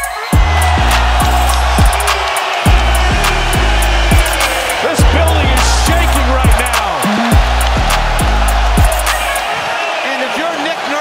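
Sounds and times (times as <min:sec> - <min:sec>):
beat music with sliding bass: 0:00.0 - 0:09.6.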